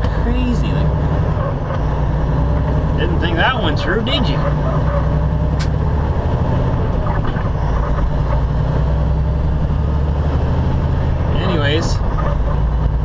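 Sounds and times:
diesel truck engine drone: 0:00.0 - 0:13.0
road noise: 0:00.0 - 0:13.0
sharp click: 0:05.6 - 0:05.8.

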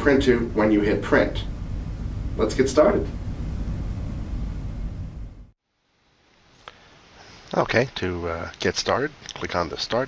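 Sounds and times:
studio room tone rumble and hiss: 0:00.0 - 0:10.0.

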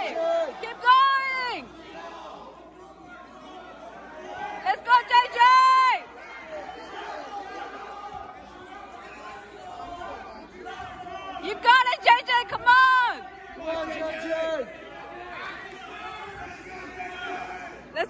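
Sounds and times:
loud shout of encouragement: 0:00.0 - 0:02.4, 0:03.2 - 0:17.8
spectators low chatter: 0:00.0 - 0:18.0.

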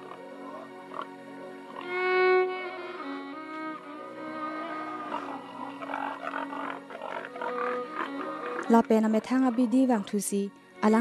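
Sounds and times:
pigs grunting: 0:00.0 - 0:01.9, 0:04.5 - 0:10.1
soft background music: 0:00.0 - 0:11.0.

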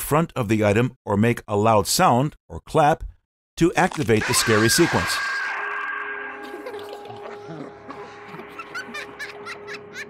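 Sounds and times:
steady low drone: 0:04.3 - 0:10.0
child's giggling chirps: 0:06.4 - 0:10.0.

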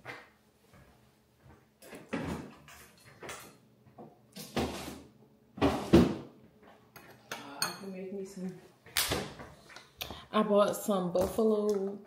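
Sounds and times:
refrigerator items knocking and clattering: 0:02.0 - 0:03.4, 0:05.6 - 0:06.4.

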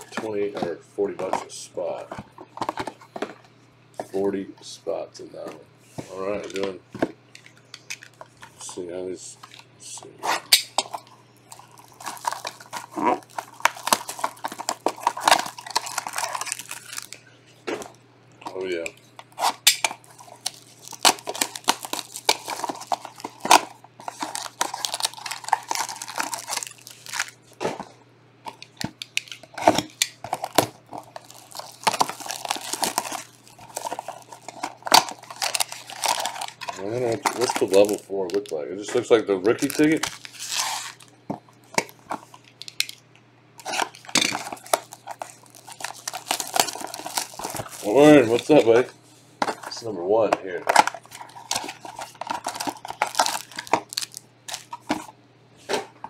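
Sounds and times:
plastic shrink-wrap crinkling and tearing: 0:10.8 - 0:17.2, 0:18.6 - 0:27.6, 0:28.5 - 0:43.0, 0:43.6 - 0:48.9, 0:50.6 - 0:55.1.

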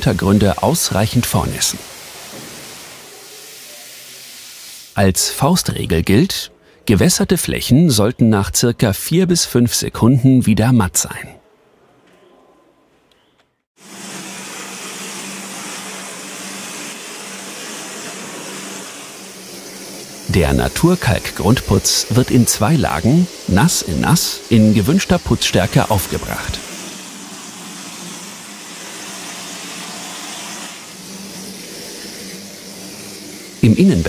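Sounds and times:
hose water spraying on brick wall: 0:00.0 - 0:05.0, 0:13.8 - 0:34.0.

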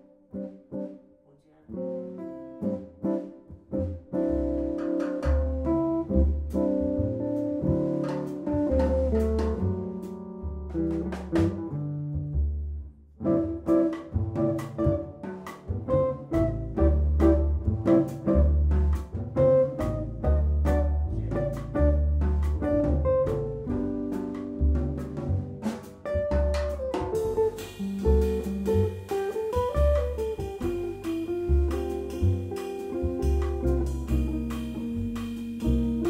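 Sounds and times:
plucked double bass: 0:01.7 - 0:36.0
drums and cymbal strikes: 0:22.4 - 0:36.0
electric guitar lines: 0:27.2 - 0:36.0.

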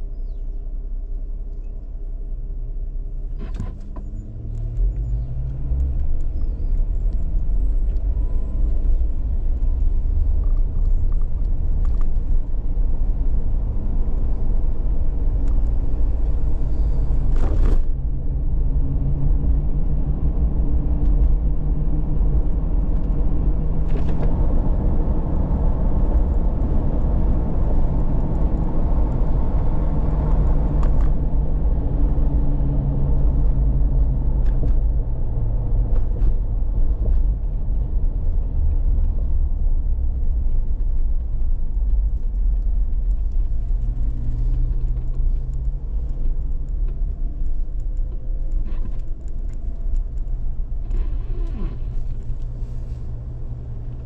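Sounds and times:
road rumble: 0:00.0 - 0:54.0
car engine: 0:00.6 - 0:54.0.

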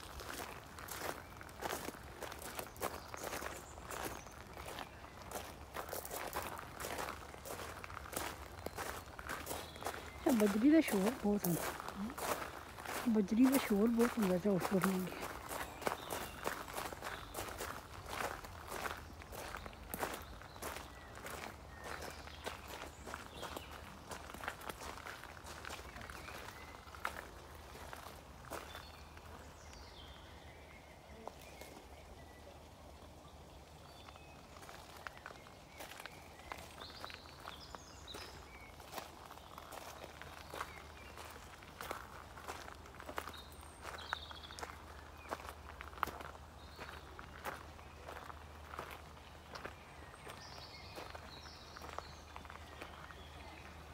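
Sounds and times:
footsteps crunching on gravel: 0:00.0 - 0:30.1, 0:33.9 - 0:53.8.

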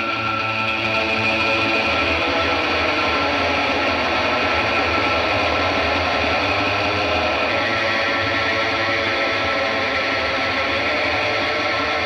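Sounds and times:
distorted guitar rock drone: 0:00.0 - 0:12.0.

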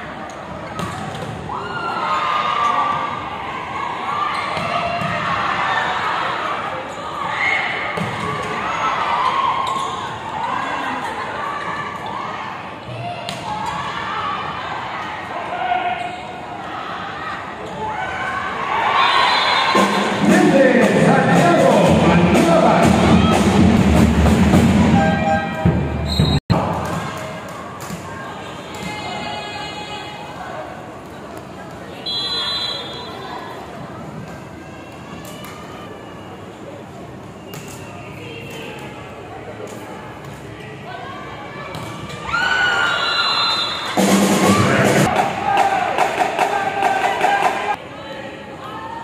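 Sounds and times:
crowd shouting and cheering: 0:00.0 - 0:31.0, 0:40.7 - 0:49.0.

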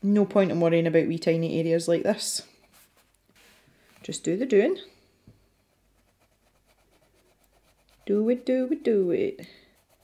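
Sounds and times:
pencil scratching on paper: 0:05.7 - 0:10.0.

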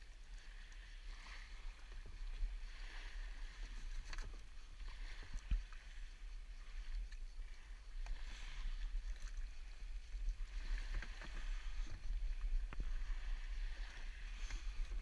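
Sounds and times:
low microphone rumble: 0:07.4 - 0:15.0.

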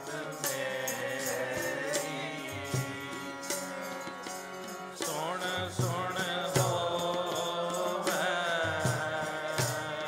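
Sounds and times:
harmonium chords: 0:00.0 - 0:10.0
man singing: 0:00.0 - 0:10.0.

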